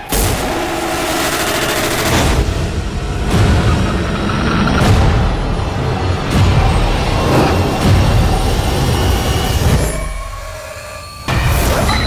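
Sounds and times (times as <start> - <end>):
rapid rattling noise effect: 1.0 - 5.4
low rumble: 2.4 - 8.6.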